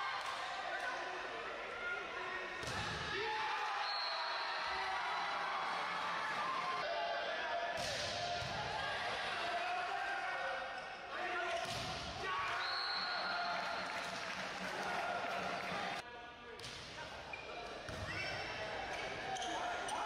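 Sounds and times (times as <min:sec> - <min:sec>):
referee's whistle: 0:03.8 - 0:04.7, 0:12.5 - 0:13.8.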